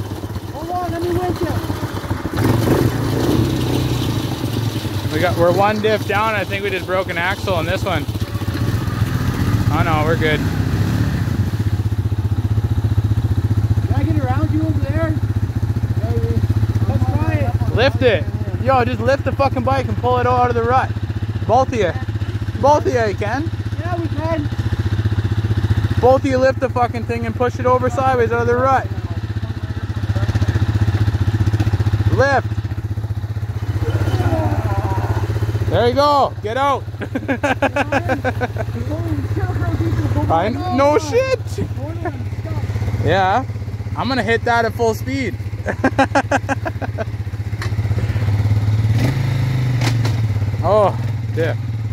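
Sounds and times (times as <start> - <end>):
voices calling: 0.0 - 12.8, 13.4 - 48.8
atv engine running: 0.0 - 51.9.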